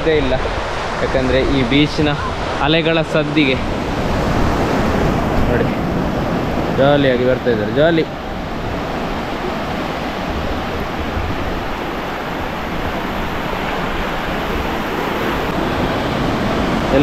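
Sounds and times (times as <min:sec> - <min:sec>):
surf breaking over sand: 0:00.0 - 0:17.0.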